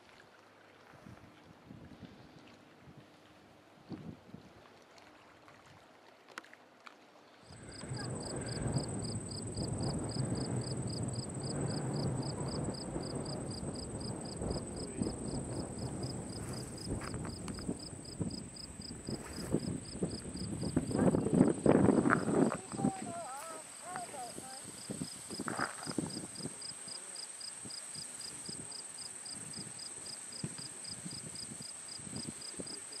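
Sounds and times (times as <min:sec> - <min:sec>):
rumbling wind noise: 0:07.5 - 0:26.7, 0:27.7 - 0:32.9
insects chirping: 0:07.5 - 0:33.0.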